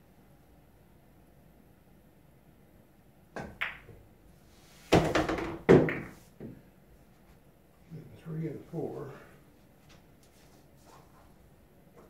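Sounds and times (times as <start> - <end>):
cue striking ball: 3.4 - 4.0, 4.9 - 6.6
pool balls clicking together: 3.4 - 4.0.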